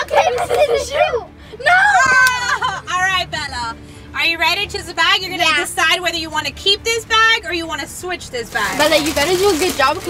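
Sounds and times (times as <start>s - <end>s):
girls talking excitedly: 0.0s - 3.6s.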